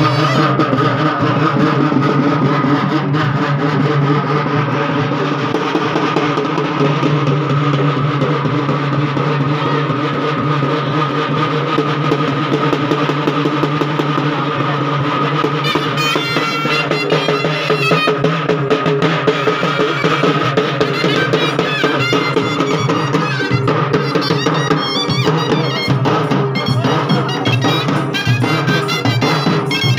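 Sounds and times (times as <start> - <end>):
droning wind instrument: 0.0 - 7.2, 15.0 - 29.9
rapid drumming: 0.0 - 29.9.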